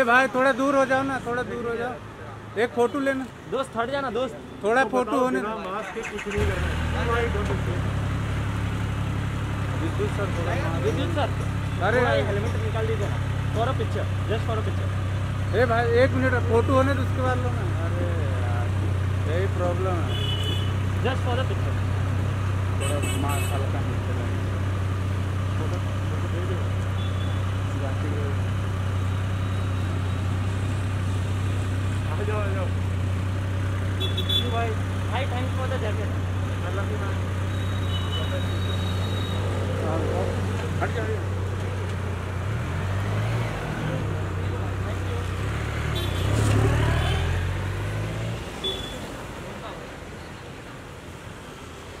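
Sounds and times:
street traffic noise: 0.0 - 52.0
motorcycle engine revving: 6.0 - 16.2, 17.0 - 49.0.

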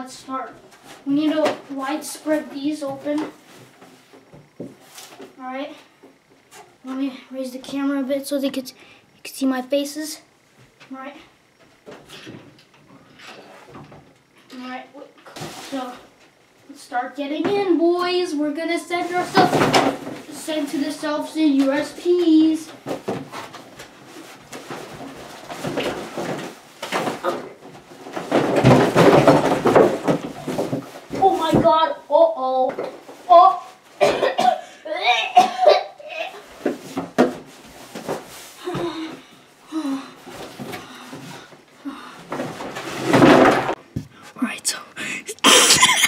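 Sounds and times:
boy coughing: 34.0 - 36.4, 45.0 - 46.0
boy mumbling: 44.2 - 46.0
boy laughing: 45.0 - 46.0.

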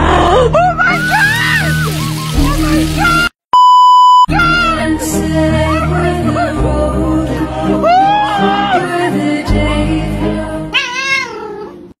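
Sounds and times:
background music: 4.3 - 11.9
cat meow: 10.7 - 11.7.

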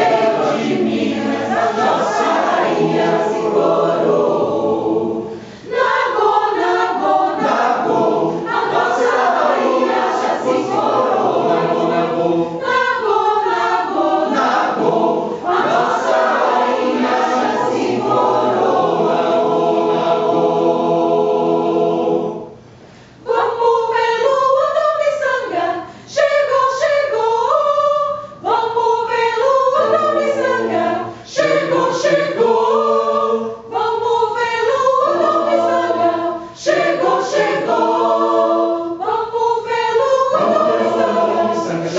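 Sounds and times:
mixed choir singing a cappella: 0.0 - 22.6, 23.2 - 41.9.

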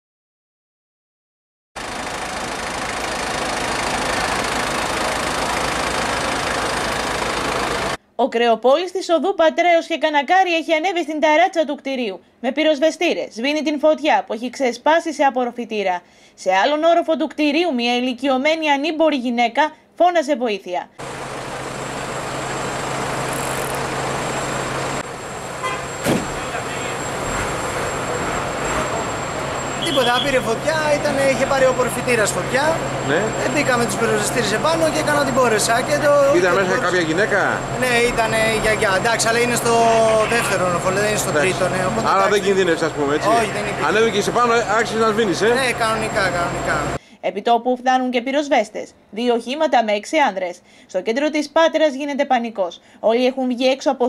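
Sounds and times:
fire engine engine running: 1.8 - 8.0, 21.0 - 47.0
street noise: 1.8 - 8.0, 21.0 - 47.0.

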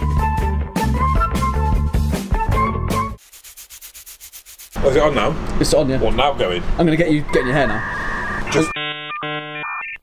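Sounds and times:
music: 0.0 - 3.2
fast even scratching: 3.2 - 5.2.

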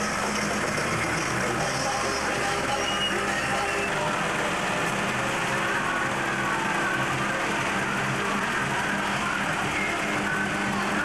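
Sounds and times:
crowd chatter: 0.0 - 11.0
tractor engine running: 0.0 - 11.0.

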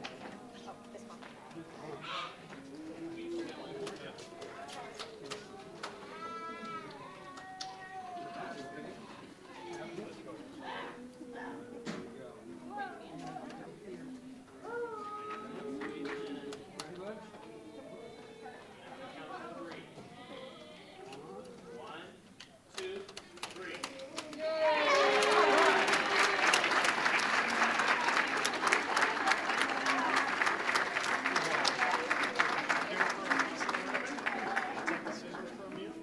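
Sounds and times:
murmur of voices: 0.0 - 36.0
crowd talking: 23.5 - 36.0.

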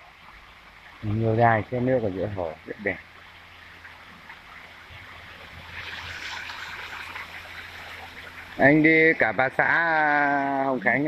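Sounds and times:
fountain splashing water: 0.9 - 11.0.

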